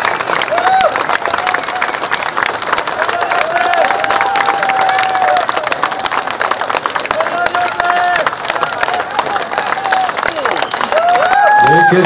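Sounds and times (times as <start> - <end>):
crowd clapping and cheering: 0.0 - 12.0.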